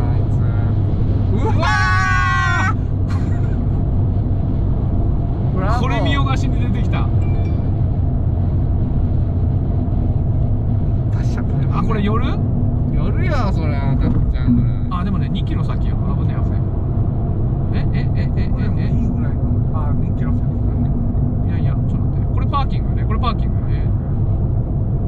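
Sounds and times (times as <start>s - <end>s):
car cabin road and engine drone: 0.0s - 25.0s.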